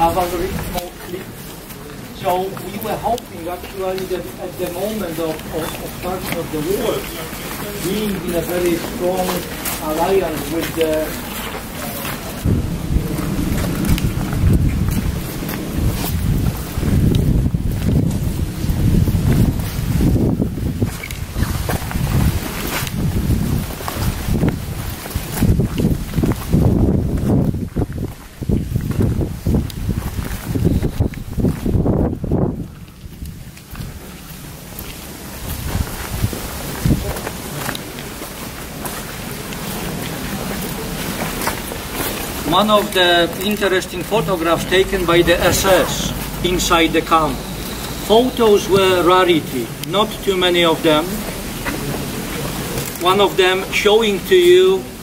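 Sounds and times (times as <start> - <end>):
light rain on wet paving: 0.0 - 55.0
wind buffeting microphone: 11.1 - 42.6.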